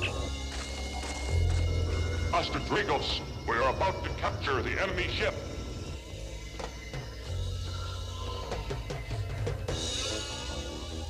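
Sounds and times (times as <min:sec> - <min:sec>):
low drone: 0:00.0 - 0:11.0
orchestral background score: 0:00.0 - 0:11.0.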